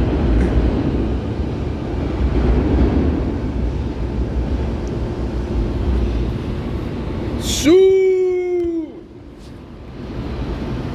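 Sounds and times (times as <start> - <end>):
low station rumble: 0.0 - 10.9.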